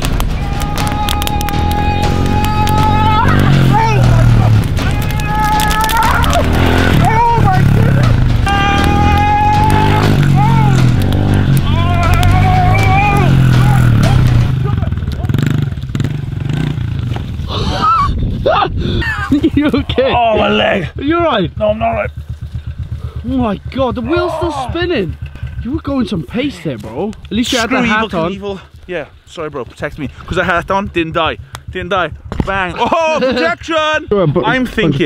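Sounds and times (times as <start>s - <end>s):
steady bass line: 0.0s - 17.5s, 19.0s - 28.4s.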